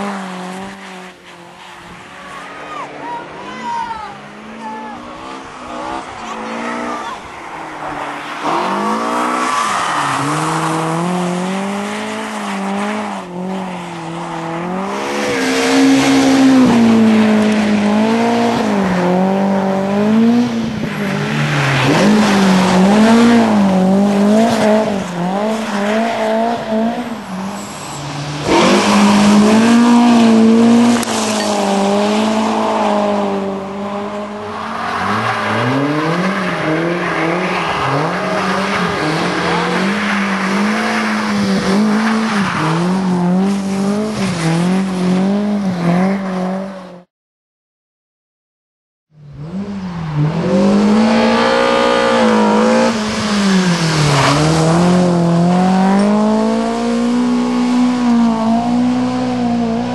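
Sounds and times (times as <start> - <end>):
rally car engine revving: 0.0 - 47.1, 49.3 - 59.9.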